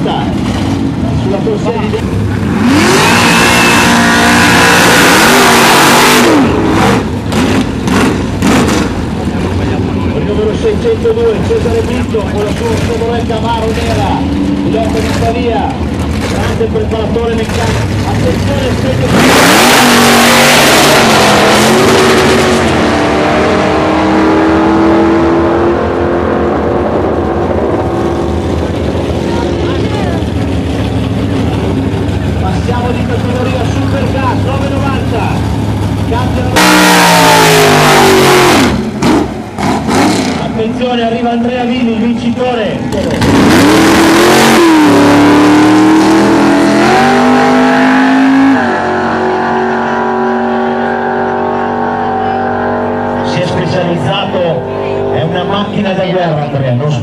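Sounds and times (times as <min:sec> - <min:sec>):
muscle car engine revving: 0:00.0 - 0:56.3
drag cars launching at full throttle: 0:00.0 - 0:57.0.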